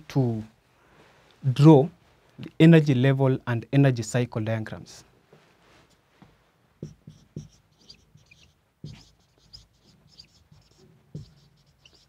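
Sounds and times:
marker squeaking on whiteboard: 0:06.8 - 0:12.0
pen knocking on board: 0:08.8 - 0:09.2, 0:11.1 - 0:11.5.

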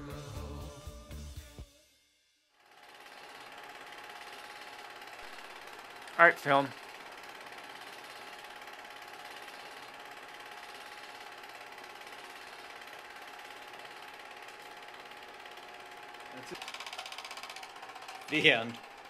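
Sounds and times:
film projector whirring: 0:02.6 - 0:19.0.

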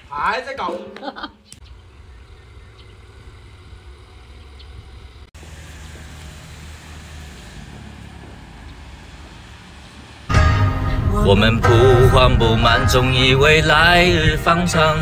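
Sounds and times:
car engine rumble: 0:01.6 - 0:15.0.

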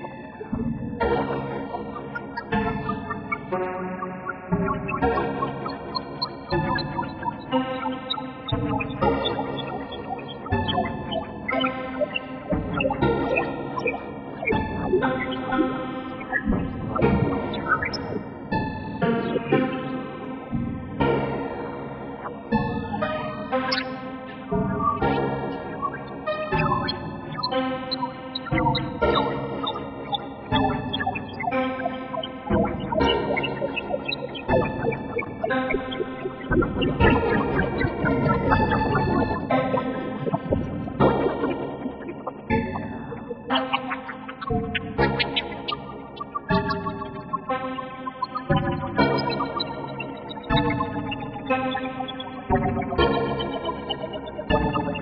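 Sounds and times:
sustained synth tones: 0:00.0 - 0:20.9, 0:21.8 - 0:55.0.

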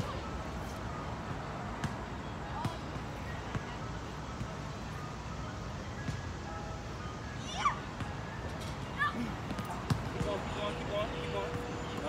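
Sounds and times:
park background noise: 0:00.0 - 0:12.0.

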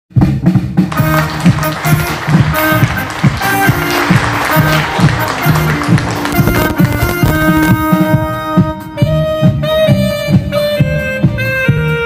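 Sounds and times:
drum kit beat: 0:00.1 - 0:12.0
bass line: 0:00.2 - 0:12.0
electronic keyboard: 0:01.1 - 0:12.0.

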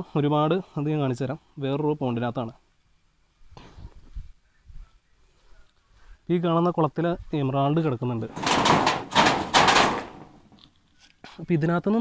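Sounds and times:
rustling scraping noise: 0:08.2 - 0:11.1.

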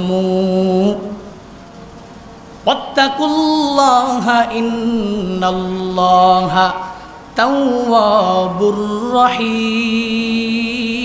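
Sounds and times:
man chanting melodically: 0:00.0 - 0:01.4, 0:02.6 - 0:11.0.

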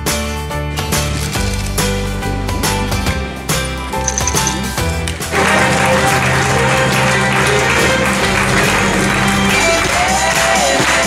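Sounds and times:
background music with low tones: 0:00.0 - 0:11.0
crowd applause: 0:04.1 - 0:11.0.

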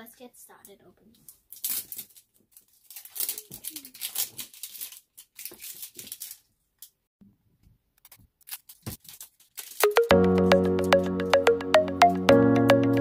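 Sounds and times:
plastic wrapping tearing: 0:01.5 - 0:06.5, 0:08.4 - 0:10.1.

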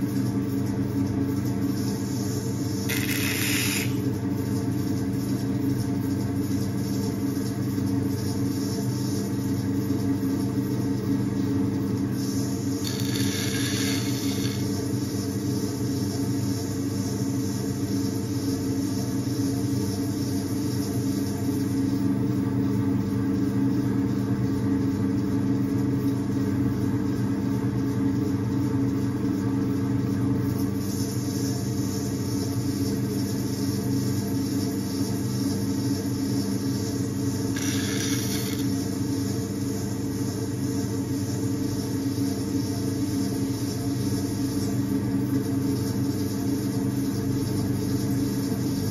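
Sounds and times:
potter's wheel humming: 0:00.0 - 0:23.7, 0:26.9 - 0:48.9.

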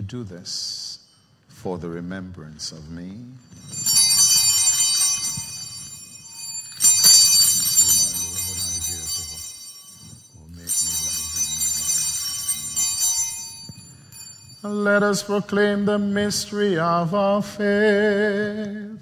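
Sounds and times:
hand-held altar bells ringing: 0:03.4 - 0:15.4.

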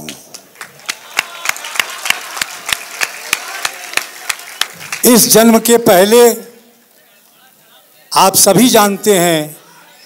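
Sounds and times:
audience clapping in rhythm: 0:00.0 - 0:05.6.

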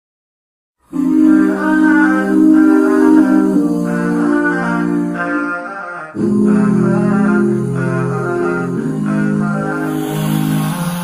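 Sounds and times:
layered voices singing chords: 0:00.8 - 0:11.0.

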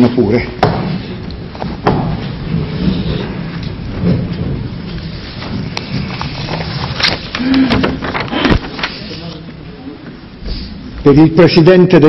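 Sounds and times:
shuffling and chair noise: 0:01.0 - 0:11.0.

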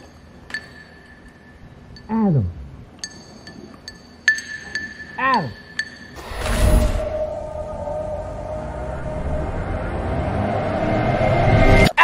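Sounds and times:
deep rumbling drone: 0:06.2 - 0:11.9.

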